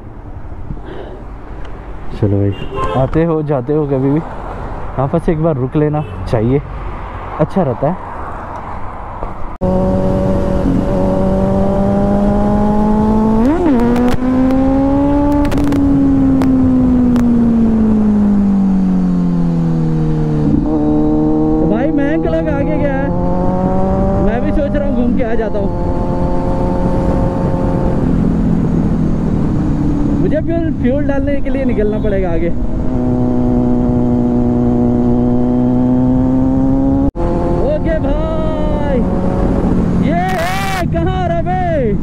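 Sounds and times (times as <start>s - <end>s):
motorcycle engine riding: 9.6s - 42.0s
wind rush: 19.7s - 31.5s.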